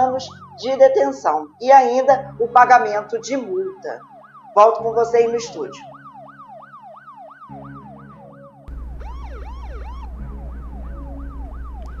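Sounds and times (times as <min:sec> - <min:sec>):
second siren with slower sweeps: 0:00.2 - 0:00.7, 0:03.6 - 0:04.9, 0:05.7 - 0:12.0
electronic siren cycling rapidly: 0:05.8 - 0:12.0
steady low hum: 0:08.7 - 0:12.0.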